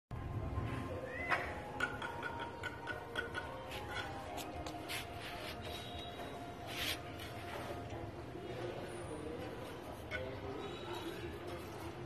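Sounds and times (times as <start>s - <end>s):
background music: 0.4s - 8.4s.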